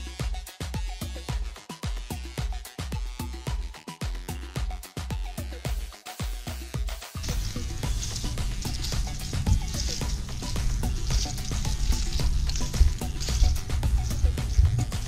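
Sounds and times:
music with heavy bass beat: 0:00.0 - 0:15.0.

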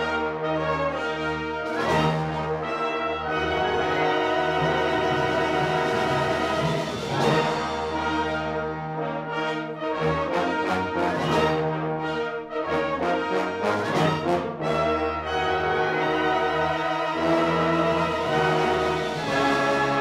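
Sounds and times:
wind band playing: 0:00.0 - 0:20.0.

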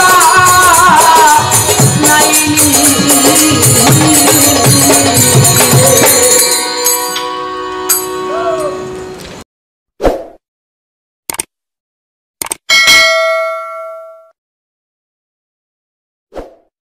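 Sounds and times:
quick double clicks: 0:11.3 - 0:11.5, 0:12.4 - 0:12.7
bell ding: 0:12.7 - 0:14.4.

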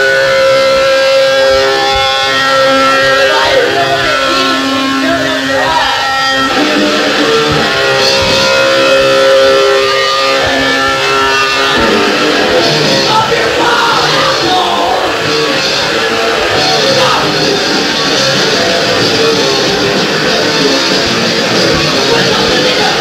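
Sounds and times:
distorted electric guitar chords: 0:00.0 - 0:23.0
punk band playing live: 0:00.0 - 0:23.0.

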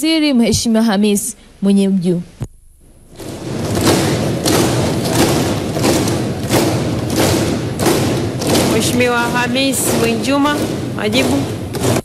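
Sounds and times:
people pounding on desks: 0:03.0 - 0:12.0.

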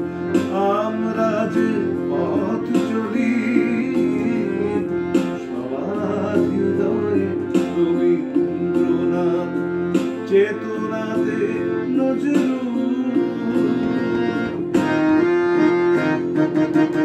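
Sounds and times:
harmonium chords: 0:00.0 - 0:17.0
man singing: 0:00.4 - 0:14.7.

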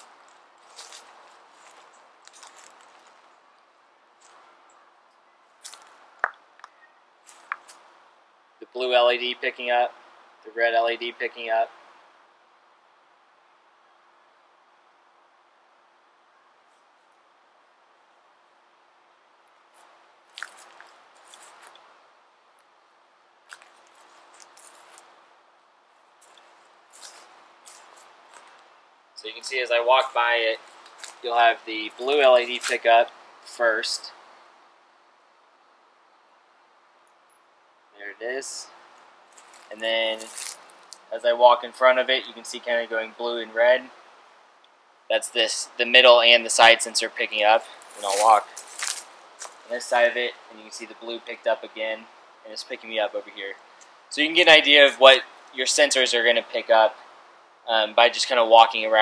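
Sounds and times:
faint footsteps: 0:00.0 - 0:04.7, 0:05.5 - 0:08.0, 0:19.6 - 0:22.8, 0:23.4 - 0:34.6, 0:38.7 - 0:41.2, 0:47.6 - 0:49.7
rustling: 0:00.0 - 0:08.0, 0:19.5 - 0:22.8, 0:23.4 - 0:34.8, 0:38.6 - 0:41.3, 0:47.4 - 0:50.2.

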